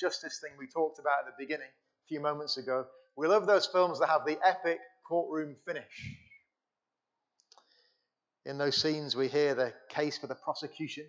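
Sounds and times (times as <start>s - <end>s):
man speaking: 0.0s - 6.2s, 8.5s - 11.0s.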